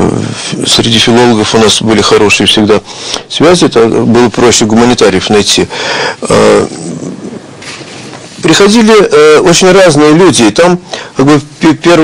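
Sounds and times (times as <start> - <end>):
man's throaty hesitation sound: 0.0 - 0.7, 5.8 - 7.6.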